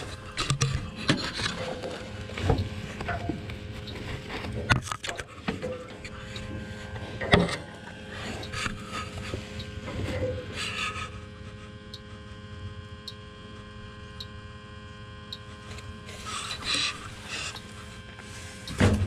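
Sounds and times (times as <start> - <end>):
steady hum: 0.0 - 19.0
faint regular ticks: 11.9 - 12.2, 13.0 - 18.8.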